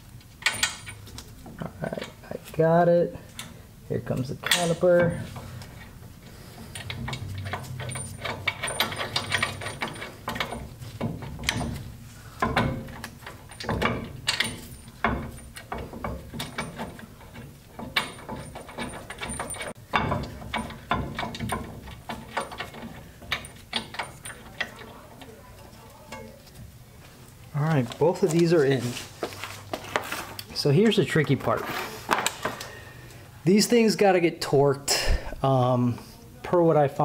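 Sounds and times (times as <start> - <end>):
metal clinks: 6.6 - 11.8, 12.4 - 26.4.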